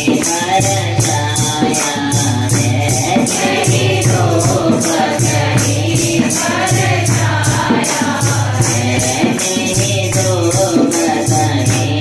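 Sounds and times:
devotional song into a microphone: 0:00.0 - 0:12.0
tambourine-like jingle: 0:00.0 - 0:12.0
low pulsing accompaniment: 0:02.6 - 0:07.6
group voices: 0:02.8 - 0:08.6.

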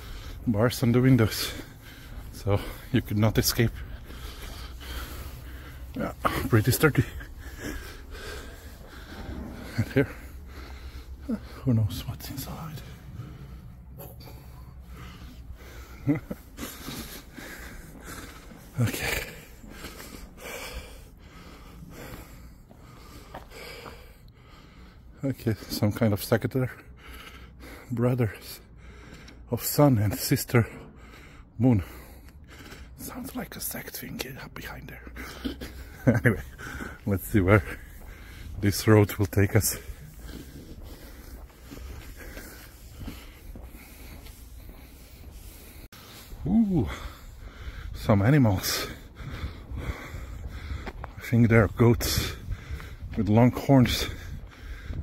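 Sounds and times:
person breathing: 0:00.0 - 0:00.5, 0:01.2 - 0:25.2, 0:26.8 - 0:27.9, 0:28.6 - 0:29.5, 0:30.6 - 0:33.1, 0:34.9 - 0:38.7, 0:39.5 - 0:48.1, 0:48.7 - 0:51.2, 0:52.1 - 0:53.2, 0:54.0 - 0:55.0
footsteps on pavement: 0:00.0 - 0:25.8, 0:26.4 - 0:55.0
background noise haze: 0:00.0 - 0:54.9
wind rumble on microphone: 0:49.1 - 0:55.0.

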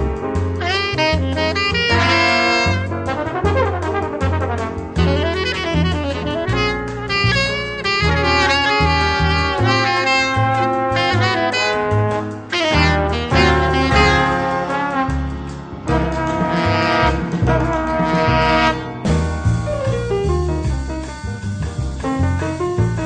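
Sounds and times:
bossa nova jazz horn section: 0:00.0 - 0:21.1
moving bass line: 0:00.0 - 0:23.0.

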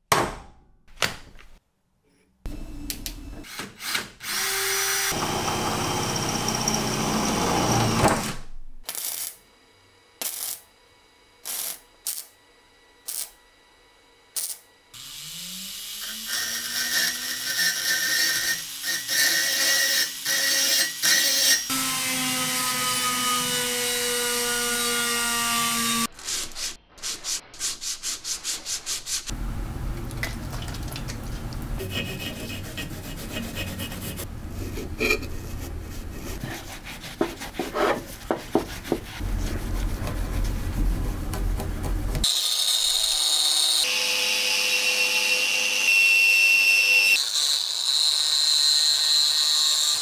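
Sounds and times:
power drill running: 0:03.8 - 0:08.0
rotary tool grinding steel: 0:14.4 - 0:21.7, 0:31.8 - 0:39.0.

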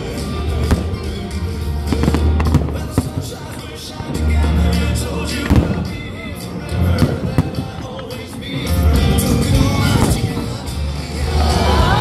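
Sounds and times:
firework crackles: 0:00.0 - 0:12.0
music with heavy bass: 0:00.0 - 0:12.0
firework bang: 0:05.4 - 0:06.1.

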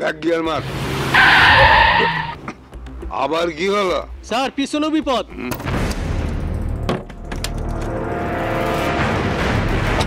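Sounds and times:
tyres screeching: 0:00.9 - 0:02.5.

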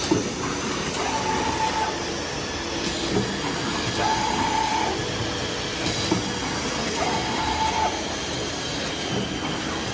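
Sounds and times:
machine mechanical din: 0:00.0 - 0:02.0, 0:02.8 - 0:09.9
machine whine: 0:00.0 - 0:09.9.

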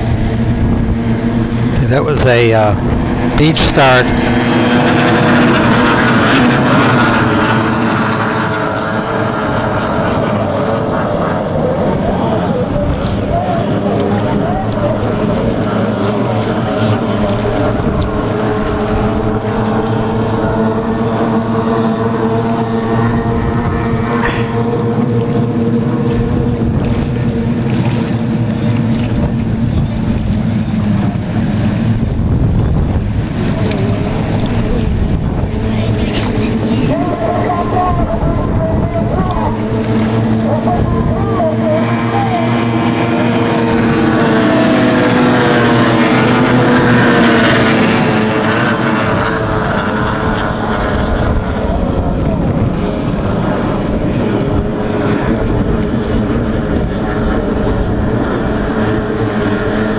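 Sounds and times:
racing boat engines roaring: 0:00.0 - 0:59.9.

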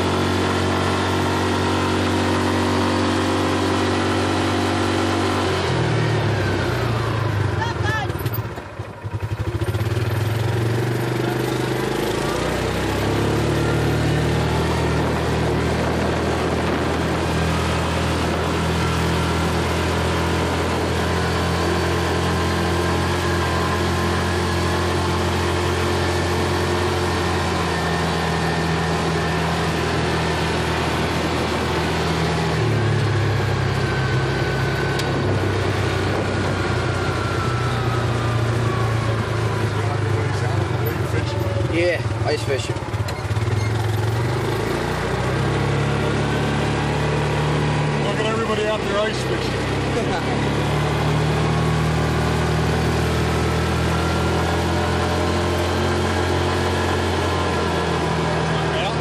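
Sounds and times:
utility vehicle engine running: 0:00.0 - 0:59.0.

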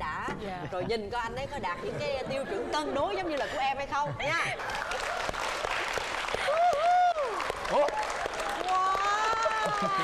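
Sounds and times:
audience applauding: 0:04.6 - 0:10.0
audience laughing: 0:09.4 - 0:10.0.

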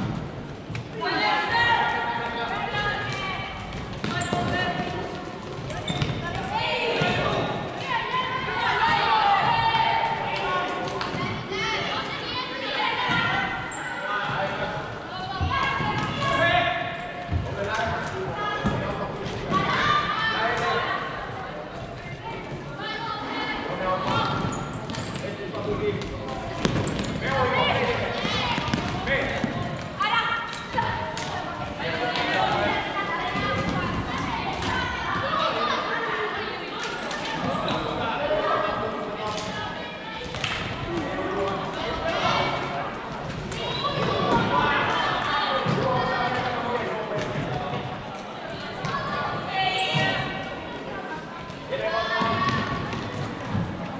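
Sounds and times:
players shouting in sports hall: 0:00.8 - 0:53.9.

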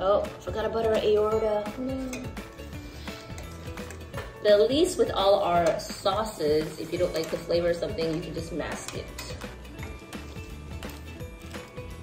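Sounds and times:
quiet background music: 0:00.0 - 0:12.0
metal utensil clinking on pot: 0:02.0 - 0:02.7, 0:05.2 - 0:11.8.

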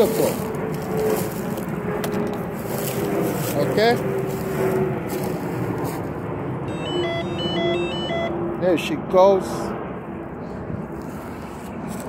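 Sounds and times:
steady rushing noise: 0:00.0 - 0:06.7
constant hum: 0:00.0 - 0:12.0
scooter electronic chime beeps: 0:06.7 - 0:08.4.

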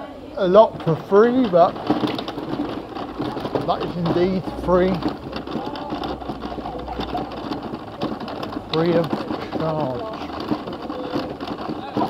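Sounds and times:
wheels rattling over paving: 0:00.4 - 0:12.0.

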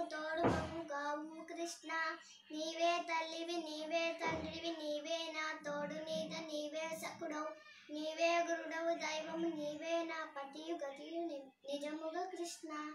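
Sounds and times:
girl singing: 0:00.0 - 0:12.9.

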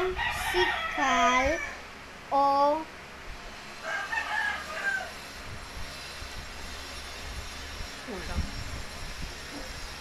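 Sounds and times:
rooster crowing: 0:00.0 - 0:01.9, 0:03.8 - 0:05.3.

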